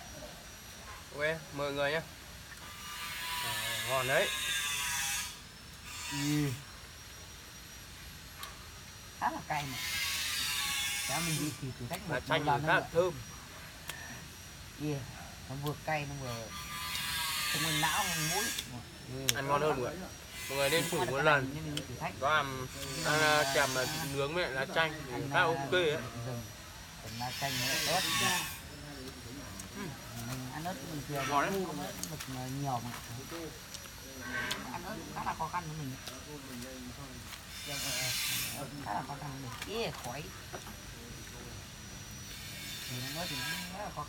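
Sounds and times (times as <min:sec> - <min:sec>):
high rasping buzz: 0:01.2 - 0:15.0, 0:15.6 - 0:40.4, 0:41.0 - 0:44.0.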